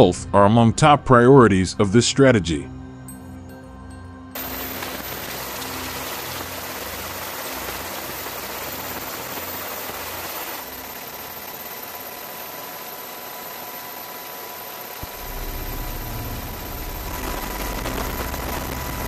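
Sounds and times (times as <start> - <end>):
aircraft engine drone: 4.4 - 19.0
low rumble: 15.0 - 19.0.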